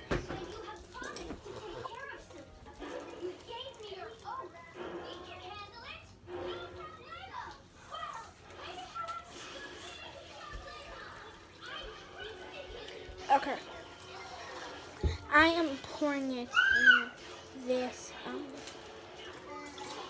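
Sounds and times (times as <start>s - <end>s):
children talking in background: 0.0s - 20.0s.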